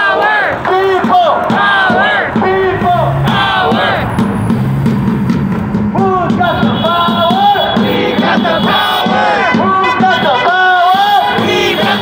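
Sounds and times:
person shouting through a megaphone: 0.0s - 4.0s, 6.0s - 12.0s
voices chanting: 0.0s - 4.8s, 5.9s - 12.0s.

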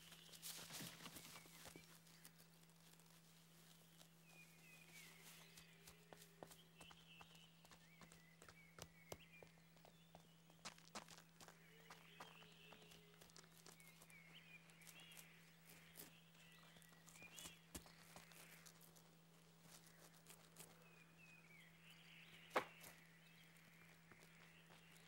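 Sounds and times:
faint low hum: 0.0s - 25.0s.

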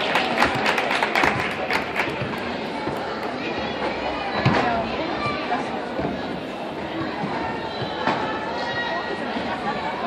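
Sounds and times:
voices in background: 0.0s - 10.0s.

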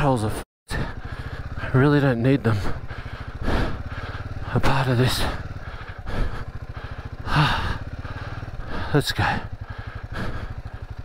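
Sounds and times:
motorcycle engine running: 0.0s - 11.0s
rider vocal sound: 0.0s - 11.0s.

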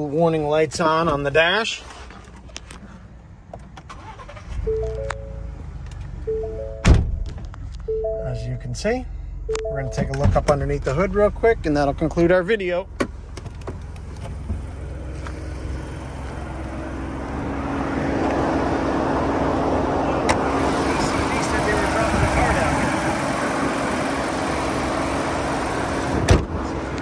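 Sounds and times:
car hood slamming shut: 6.8s - 7.2s, 26.2s - 26.6s
car engine idling: 7.6s - 27.0s.

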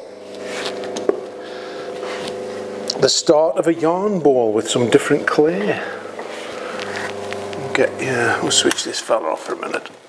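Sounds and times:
pottery wheel motor humming: 0.0s - 10.0s.

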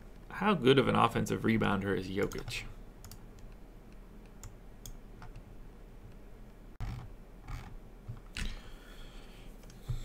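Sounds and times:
low steady hum: 0.0s - 10.0s
computer mouse clicks: 2.2s - 5.5s, 9.6s - 10.0s.

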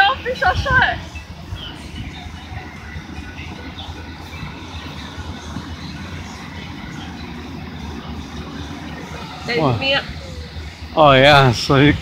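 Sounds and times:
faint distant background sounds: 0.0s - 12.0s
wind buffeting microphone: 0.0s - 12.0s.

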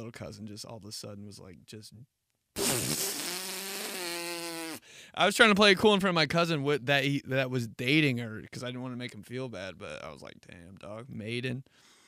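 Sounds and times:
long fart sound: 2.6s - 4.9s.

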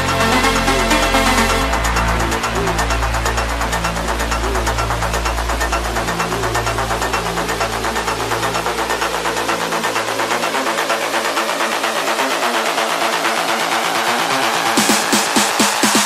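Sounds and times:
deep bass line: 0.0s - 11.4s
fast techno percussion: 0.0s - 16.0s.

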